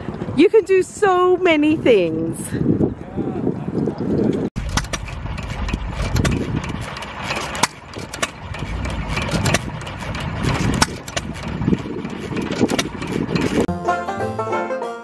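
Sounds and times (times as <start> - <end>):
sharp exhaust pops: 4.6 - 13.7
stationary gas engines chugging: 4.6 - 13.7.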